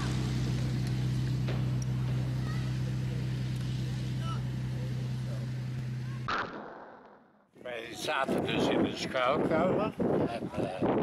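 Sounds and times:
aircraft piston engine drone: 0.0 - 6.3.

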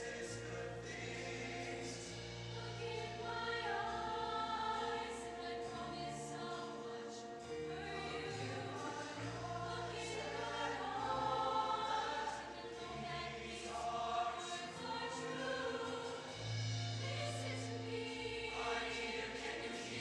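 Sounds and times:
choir singing: 0.0 - 20.0.

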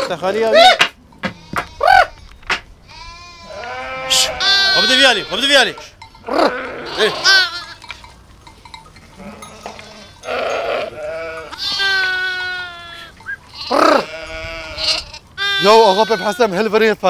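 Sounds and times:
sheep and lambs bleating: 1.2 - 8.3, 9.0 - 17.0.

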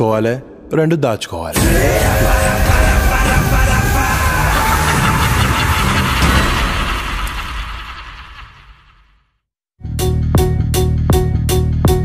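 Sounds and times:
film score and sound effects: 0.0 - 12.0
heavy low rumble: 1.6 - 9.1.

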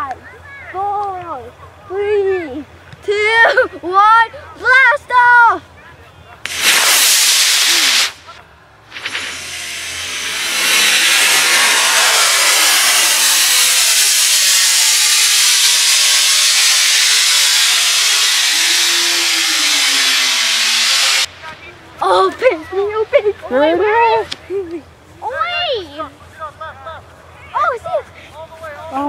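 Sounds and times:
rocket motor rushing hiss: 6.4 - 21.7.

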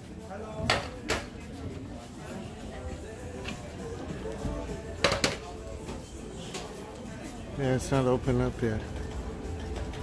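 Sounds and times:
background murmur: 0.0 - 10.0.

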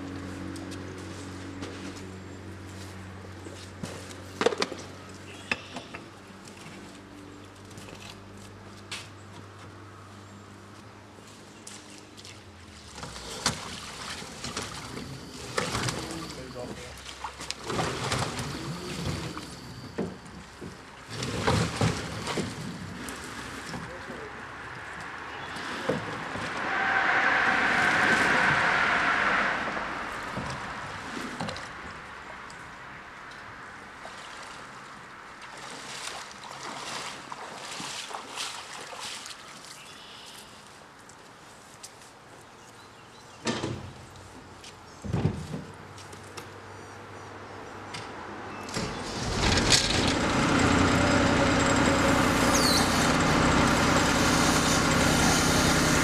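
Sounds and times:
low engine hum: 0.0 - 38.3, 45.0 - 56.0
water sloshing and splashing: 11.2 - 32.6, 33.8 - 40.5.

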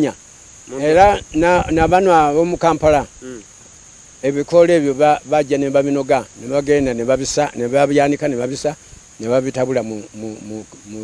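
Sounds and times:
insects chirring: 0.0 - 11.0
person talking: 0.7 - 3.4.

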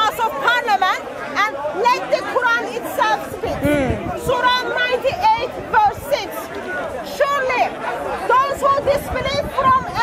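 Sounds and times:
background voices chattering: 0.0 - 10.0.

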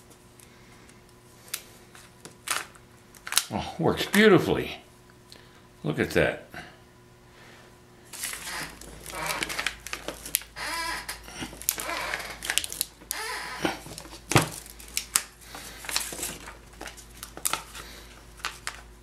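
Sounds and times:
paper crinkling and rustling: 8.1 - 18.9.

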